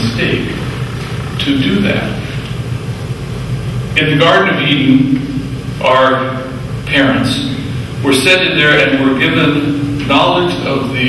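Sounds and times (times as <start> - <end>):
low mechanical hum with hiss: 0.0 - 11.0.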